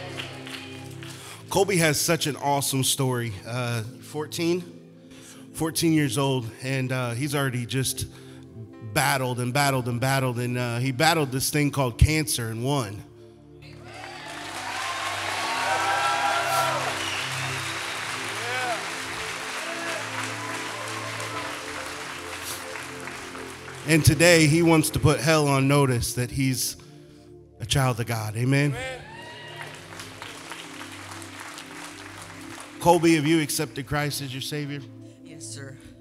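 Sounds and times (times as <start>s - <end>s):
crowd applauding and cheering: 0.0s - 1.6s, 13.7s - 25.3s, 28.7s - 33.8s
soft keyboard chords: 0.0s - 29.0s
quiet background music: 0.0s - 36.0s.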